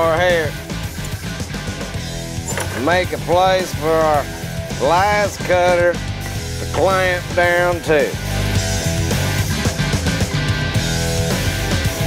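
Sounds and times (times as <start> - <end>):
man's voice: 0.0 - 0.6, 2.5 - 8.2
background music with low notes: 0.0 - 12.0.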